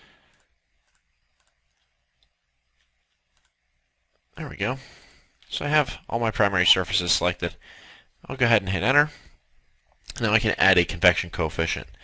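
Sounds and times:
faint computer mouse clicks: 0:00.3 - 0:03.6.

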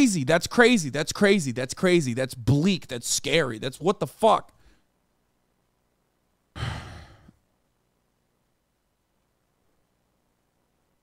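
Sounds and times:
man sighing: 0:06.6 - 0:07.4.

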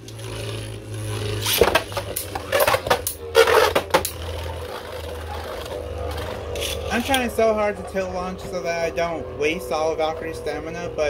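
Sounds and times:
spinning tops whirring: 0:00.0 - 0:07.5.

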